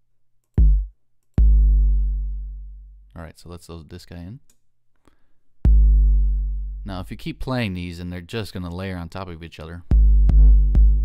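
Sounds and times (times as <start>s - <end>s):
deep kick drum boom: 0.6s - 2.3s, 5.7s - 6.9s, 9.9s - 11.0s.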